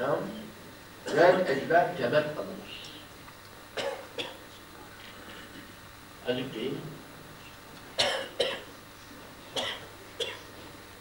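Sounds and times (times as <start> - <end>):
man coughing: 3.8 - 4.4, 8.0 - 8.7, 9.6 - 10.5.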